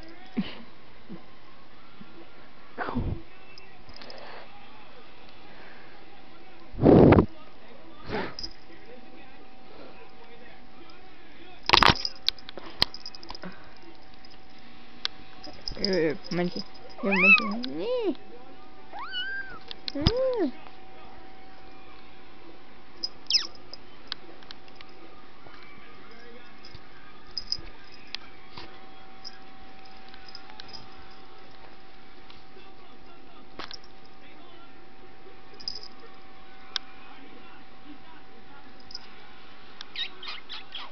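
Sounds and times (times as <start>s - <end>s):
cat mewing: 17.0s - 17.6s, 18.9s - 19.6s
kitten meowing: 17.0s - 17.6s, 19.0s - 19.6s.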